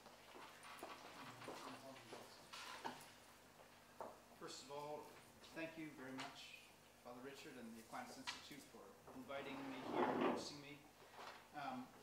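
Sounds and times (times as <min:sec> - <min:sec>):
faint footsteps and shuffling: 0:00.0 - 0:12.0
soft murmured voice: 0:00.8 - 0:03.1.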